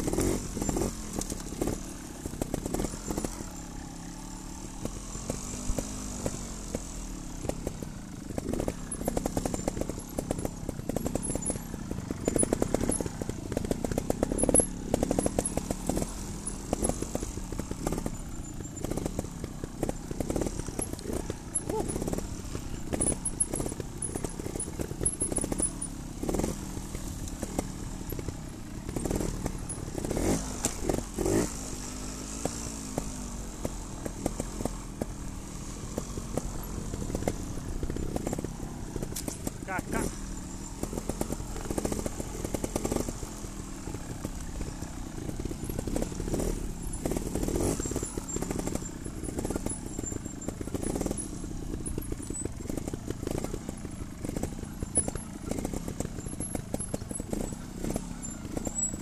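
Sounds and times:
knocks and rattles from bike: 0:00.0 - 0:59.0
motorcycle engines running: 0:00.0 - 0:59.0.

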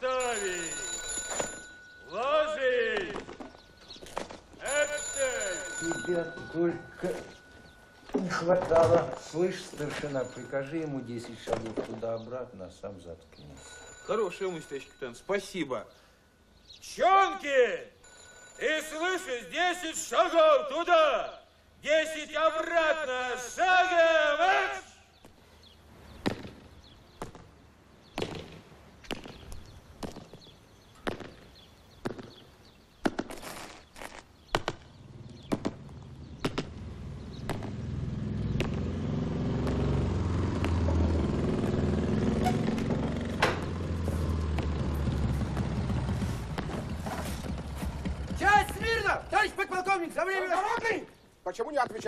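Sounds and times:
boots marching on concrete: 0:43.4 - 0:49.1, 0:50.4 - 0:51.1.

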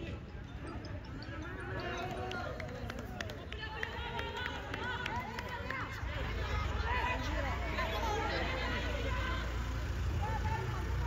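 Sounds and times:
people shouting and calling out: 0:00.0 - 0:11.0.

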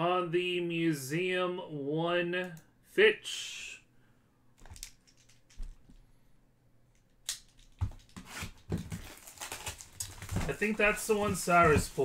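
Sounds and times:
card pack wrapper crinkling: 0:07.3 - 0:12.0.

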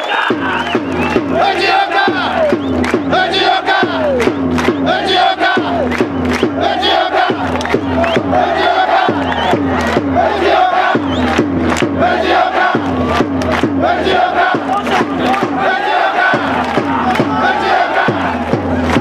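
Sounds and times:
crowd chanting in unison: 0:00.0 - 0:19.0
rhythmic clapping: 0:00.0 - 0:19.0.

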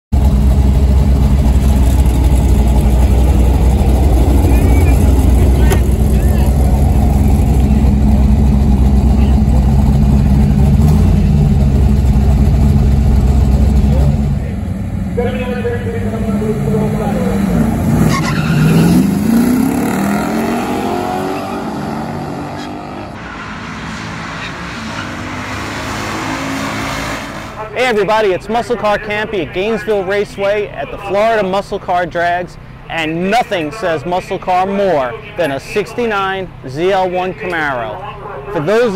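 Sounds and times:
car engine idling: 0:00.1 - 0:18.5
car accelerating down drag strip: 0:00.2 - 0:27.8.

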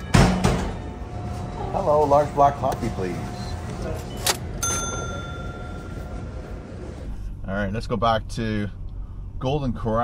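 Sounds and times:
coffee shop background noise: 0:00.0 - 0:07.3
bell-like chime: 0:04.6 - 0:06.2.

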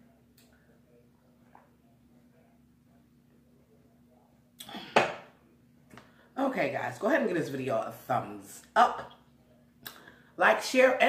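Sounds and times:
cup knocking on table: 0:05.0 - 0:05.3.

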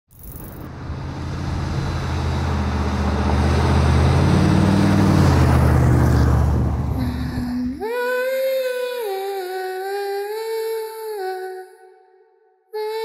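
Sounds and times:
road noise: 0:00.1 - 0:07.8
vehicle engine hum: 0:00.1 - 0:07.8.

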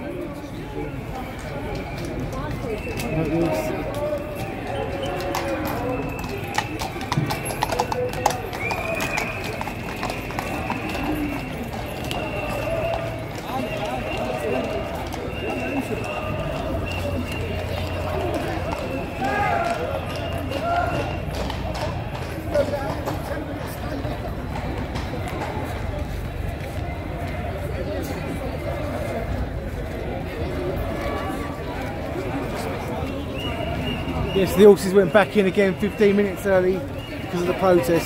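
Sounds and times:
crowd chatter: 0:00.0 - 0:38.0
hooves clip-clopping on stone: 0:01.1 - 0:28.1.

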